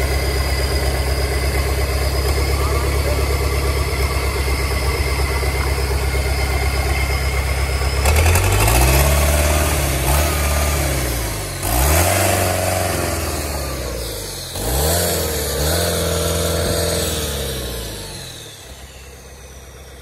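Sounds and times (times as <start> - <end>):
diesel engine idling and revving: 0.0 - 20.0.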